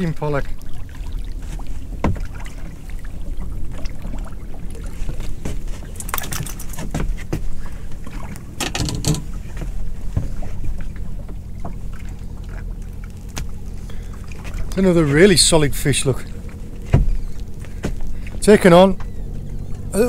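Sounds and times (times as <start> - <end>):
water sloshing against boat hull: 0.0 - 19.9
steady low hum: 0.0 - 20.0
fish splashing at surface: 0.6 - 9.7.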